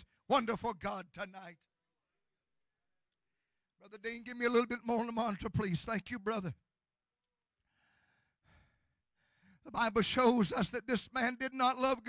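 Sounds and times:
faint breath into microphone: 7.7s - 9.6s.

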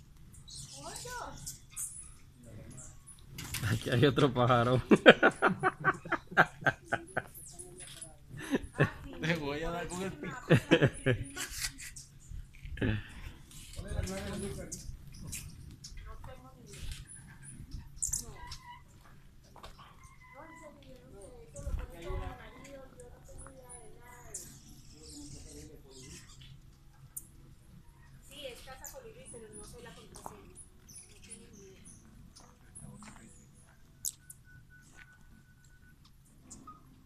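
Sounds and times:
hummingbirds chirping: 0.0s - 18.9s, 19.8s - 37.0s.

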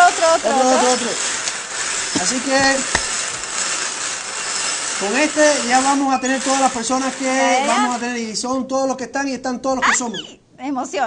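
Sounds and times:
paper tickets rustling in drum: 0.0s - 8.1s.

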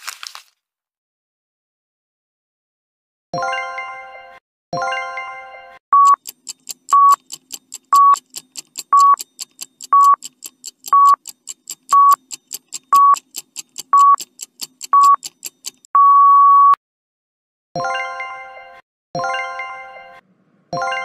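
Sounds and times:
electronic beep: 6.0s - 6.2s, 6.9s - 7.2s, 8.0s - 8.2s, 11.9s - 12.2s, 14.0s - 14.2s, 16.0s - 16.8s
fast clock-like ticking: 6.0s - 15.9s.

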